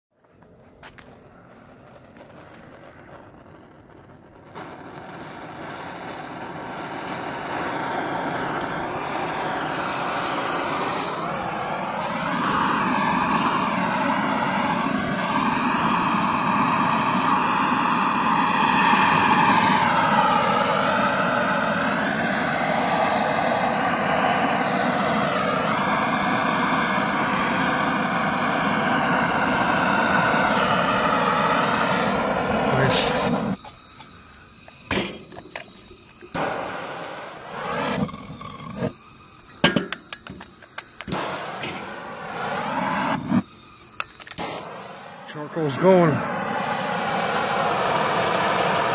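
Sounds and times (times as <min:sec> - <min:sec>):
propane torch flame rushing: 0:00.2 - 0:48.9.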